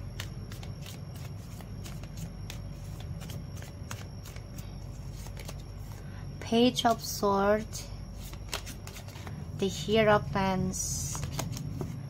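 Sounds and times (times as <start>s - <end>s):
cards being shuffled: 0.0s - 6.0s, 8.2s - 9.4s, 11.0s - 12.0s.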